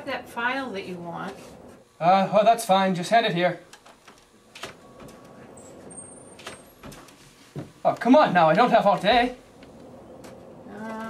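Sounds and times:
low room noise: 0:00.0 - 0:11.0
office door opening: 0:03.7 - 0:11.0.

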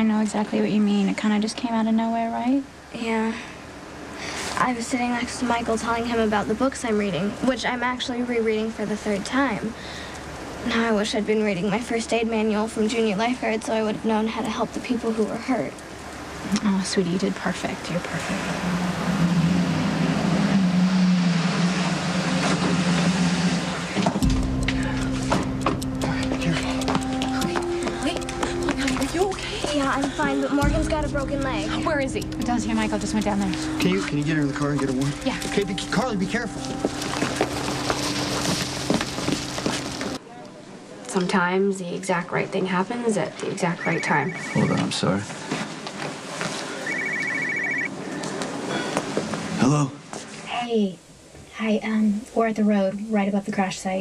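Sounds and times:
mobile phone ringing: 0:43.7 - 0:45.0, 0:46.8 - 0:47.9.

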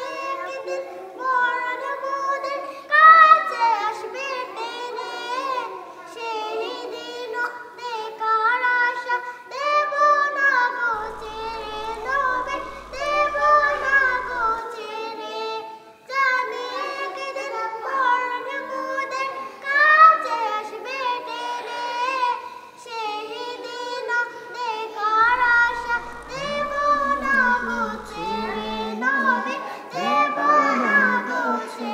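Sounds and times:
girls singing unaccompanied: 0:00.0 - 0:31.9.

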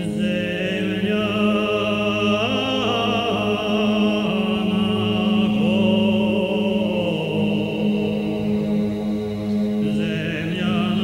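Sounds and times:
chant-like vocal music: 0:00.0 - 0:11.0
held drone note: 0:00.0 - 0:11.0.

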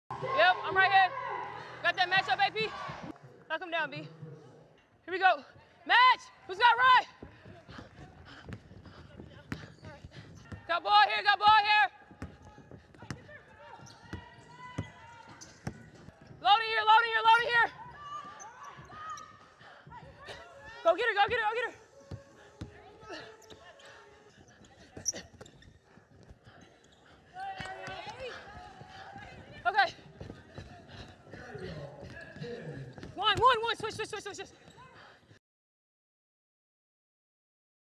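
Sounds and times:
footsteps on hardwood court: 0:07.1 - 0:10.8, 0:11.4 - 0:35.0
basketball bouncing on court: 0:07.2 - 0:10.7, 0:11.3 - 0:19.3.

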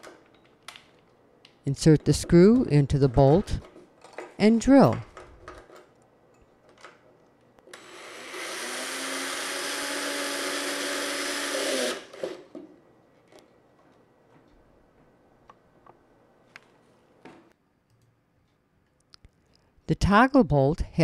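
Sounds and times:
cordless drill driving a screw: 0:07.7 - 0:12.4.

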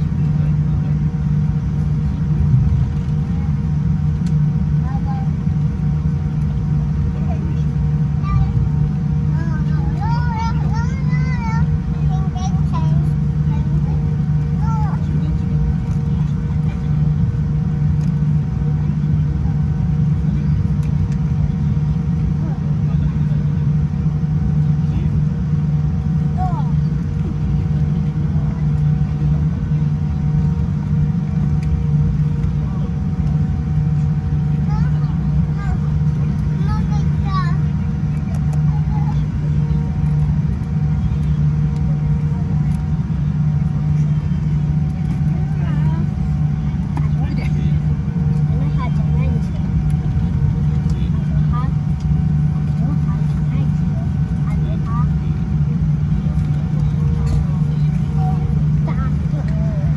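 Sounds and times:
aircraft cabin drone: 0:00.0 - 0:59.9
faint voices: 0:00.0 - 0:59.9.

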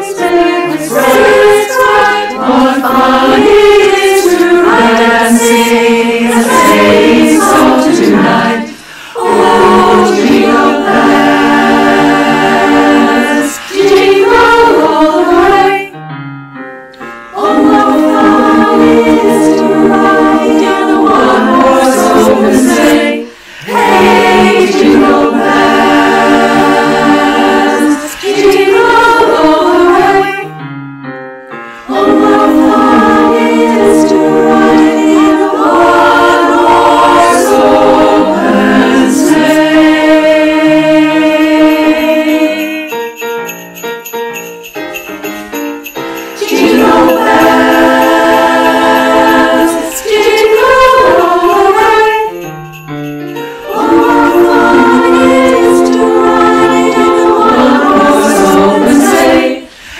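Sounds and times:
women's choir singing in harmony: 0:00.0 - 0:16.0, 0:17.0 - 0:30.6, 0:31.7 - 0:43.6, 0:45.9 - 0:52.8, 0:53.4 - 0:59.9.

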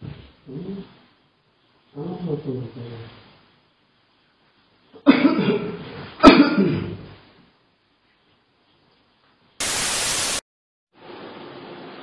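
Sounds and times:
faint hiss: 0:00.1 - 0:05.0, 0:07.2 - 0:10.4
white noise static burst: 0:09.6 - 0:10.4.

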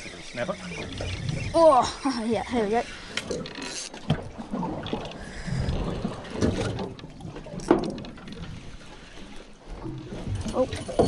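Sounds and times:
fishing reel being cranked: 0:00.0 - 0:04.0.

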